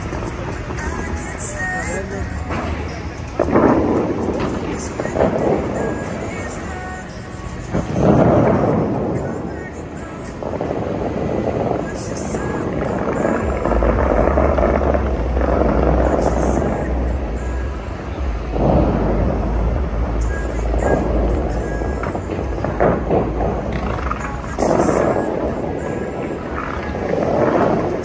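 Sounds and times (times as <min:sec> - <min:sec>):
crowd voices: 0:00.0 - 0:28.0
show music: 0:00.0 - 0:28.0.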